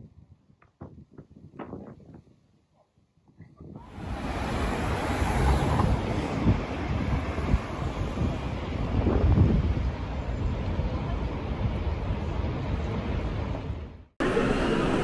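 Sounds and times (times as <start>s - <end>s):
wind buffeting microphone: 0.0s - 14.0s
street traffic: 3.8s - 15.0s.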